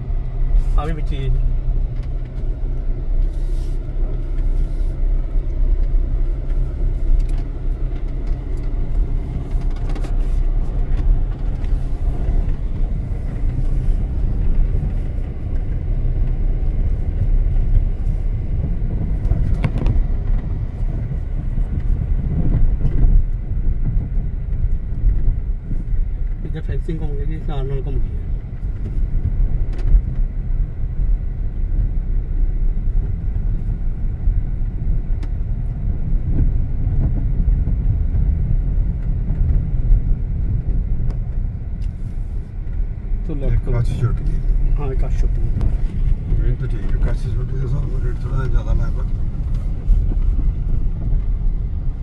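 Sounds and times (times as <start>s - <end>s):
car engine and road rumble: 0.0s - 52.0s.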